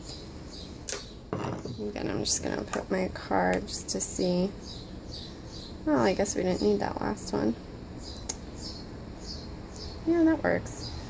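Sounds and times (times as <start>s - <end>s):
woman speaking: 1.7s - 4.6s, 5.8s - 7.6s, 10.0s - 10.9s.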